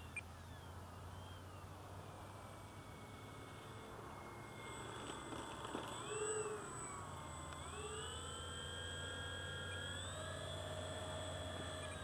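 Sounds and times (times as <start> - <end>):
electric motors and propellers whining: 0.0 - 12.0.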